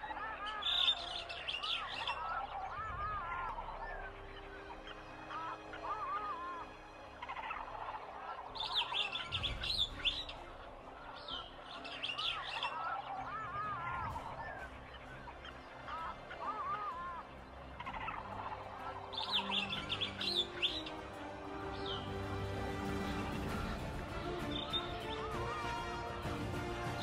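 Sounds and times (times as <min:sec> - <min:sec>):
warbling looping bird calls: 0:00.0 - 0:27.0.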